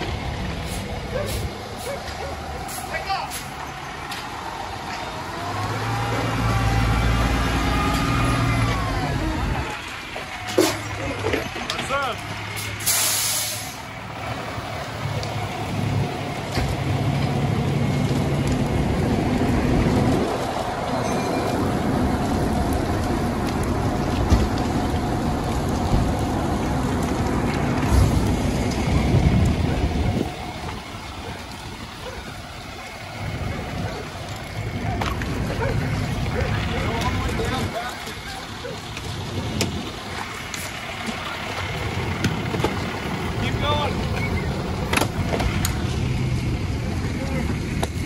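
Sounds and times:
fire engine humming: 0.0 - 48.0
air hissing: 12.6 - 13.8.

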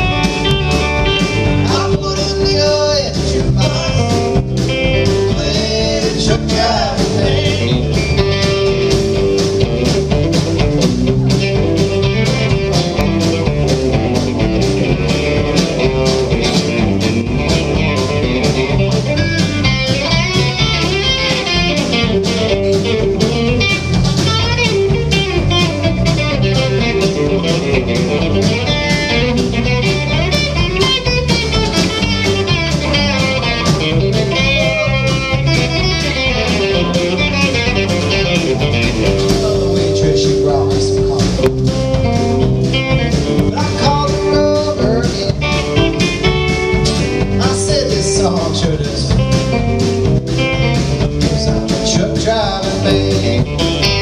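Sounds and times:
electric bass: 0.0 - 54.0
electric guitar lead: 0.0 - 54.0
steady drum beat: 0.0 - 54.0.

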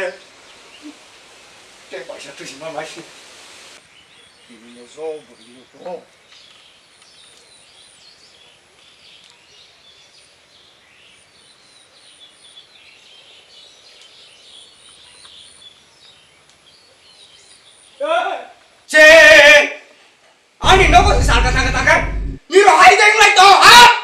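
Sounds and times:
small birds chirping: 3.7 - 18.1.

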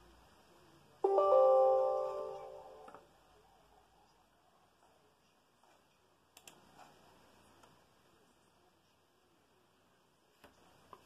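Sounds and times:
computer system chime: 1.0 - 3.0.

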